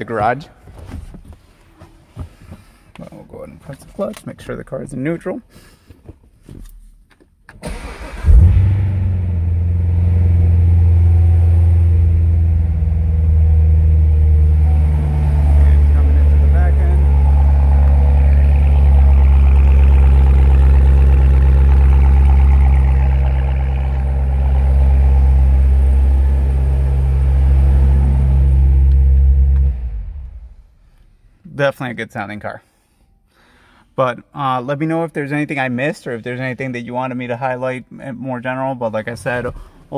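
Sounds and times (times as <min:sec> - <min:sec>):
car engine starting: 0:07.6 - 0:31.1
car engine idling: 0:07.7 - 0:31.1.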